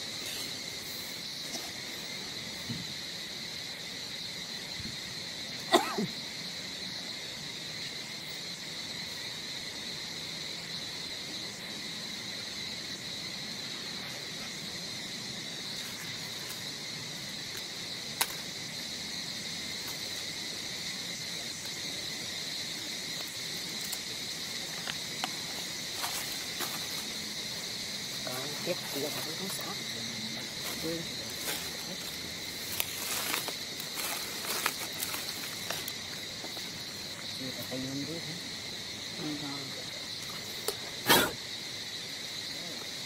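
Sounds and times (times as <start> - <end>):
insects droning: 0.0 - 43.0.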